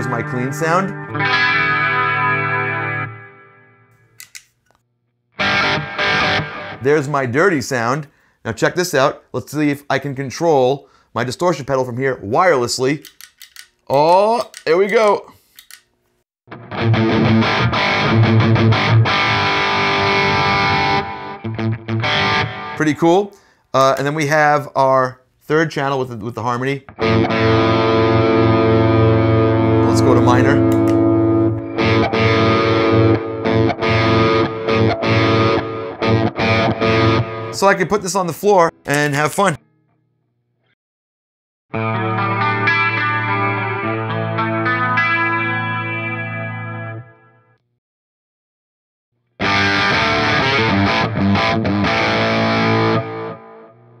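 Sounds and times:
distorted electric guitar: 0:00.0 - 0:03.9, 0:05.4 - 0:07.0, 0:16.5 - 0:22.8, 0:26.9 - 0:38.0, 0:41.8 - 0:47.4, 0:49.4 - 0:54.0.

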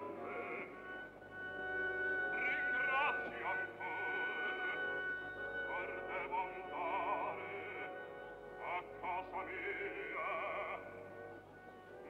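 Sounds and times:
operatic singing with vibrato: 0:00.0 - 0:12.0
orchestral accompaniment: 0:00.0 - 0:12.0.

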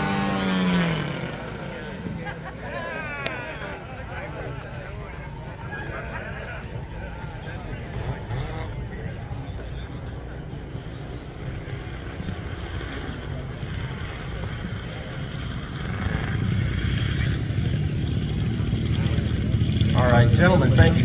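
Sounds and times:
model airplane engines in flight: 0:00.0 - 0:21.0.

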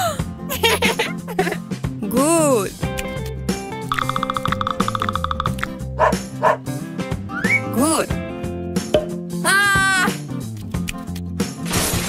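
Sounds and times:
light background music: 0:00.0 - 0:11.7
cartoon dog barking: 0:06.0 - 0:06.6.

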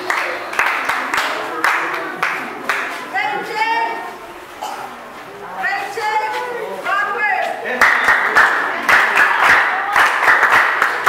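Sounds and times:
group clapping: 0:00.0 - 0:03.5, 0:06.8 - 0:11.0
voices: 0:00.0 - 0:11.0.

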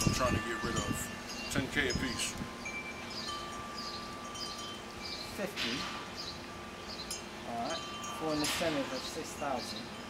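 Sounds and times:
ringing chime tones: 0:00.0 - 0:05.4
outdoor background hiss: 0:00.0 - 0:10.0.

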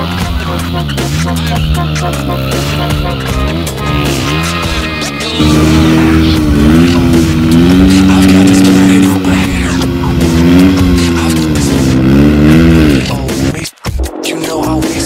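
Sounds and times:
motorcycle engine revving: 0:00.0 - 0:13.7
music playing: 0:00.0 - 0:15.0.

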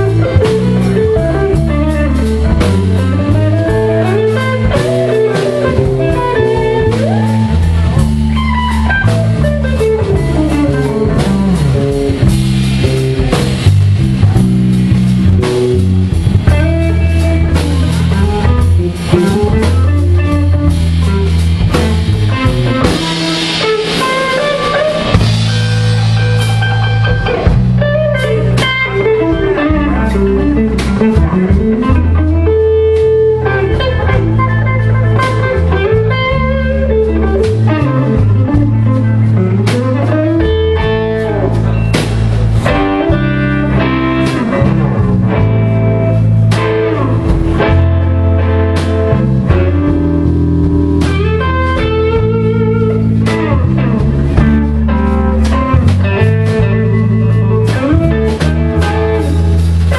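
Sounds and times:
drum kit with cymbals: 0:00.0 - 0:59.9
electric guitar solo: 0:00.0 - 0:59.9
walking bass line: 0:00.0 - 0:59.9.

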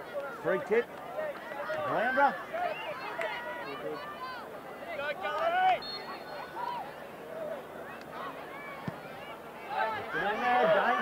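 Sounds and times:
crowd of spectators chattering: 0:00.0 - 0:11.0.

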